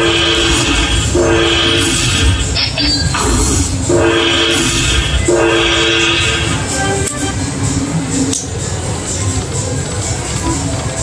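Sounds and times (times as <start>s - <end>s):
two-note horn chord: 0.0s - 2.1s, 3.9s - 7.4s
slot machine music: 0.0s - 11.0s.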